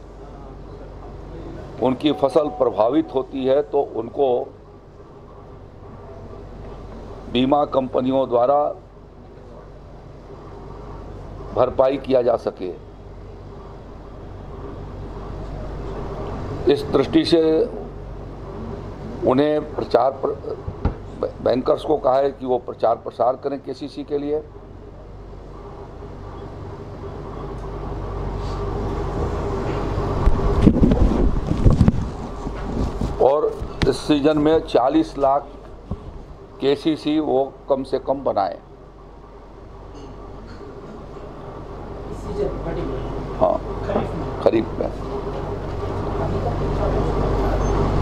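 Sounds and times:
low rumble with hum: 0:00.0 - 0:48.0
low rumbling on microphone: 0:29.0 - 0:34.7, 0:35.5 - 0:36.4.

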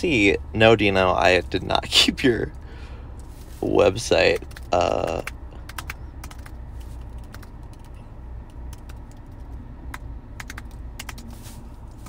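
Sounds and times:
on-screen keyboard typing clicks: 0:04.3 - 0:11.3.

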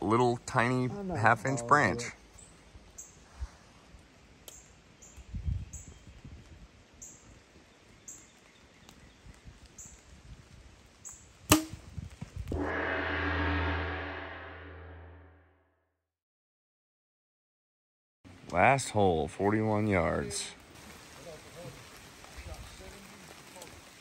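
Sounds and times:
ringing tone with deep hum: 0:12.6 - 0:15.4.

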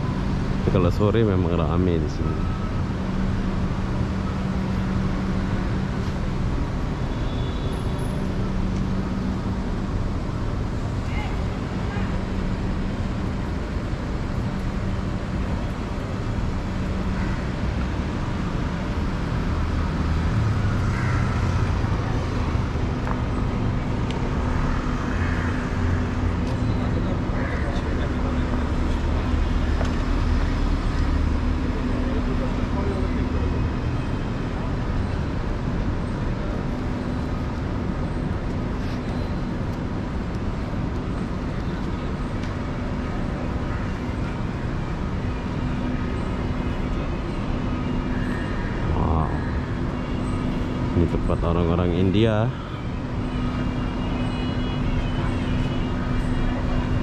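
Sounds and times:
constant low hum: 0:00.0 - 0:57.0
vehicle engines: 0:00.0 - 0:57.0.

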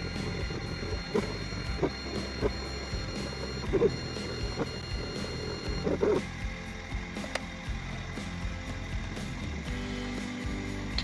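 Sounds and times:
stepper motors clicking: 0:00.0 - 0:06.4, 0:07.1 - 0:07.8.

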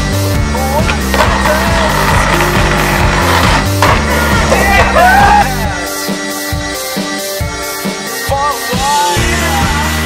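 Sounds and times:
music with a steady beat: 0:00.0 - 0:10.0
skateboard clack: 0:00.8 - 0:05.5
skateboard wheel noise: 0:00.8 - 0:05.5.

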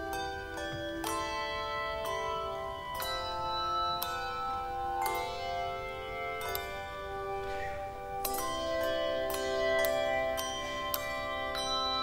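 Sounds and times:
handbell chords ringing: 0:00.0 - 0:12.0.

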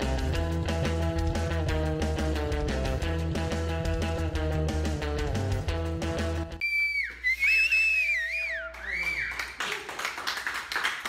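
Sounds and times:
rock and roll music with guitar: 0:00.0 - 0:06.6
person whistling: 0:06.6 - 0:09.5
hand clapping: 0:08.5 - 0:11.0.

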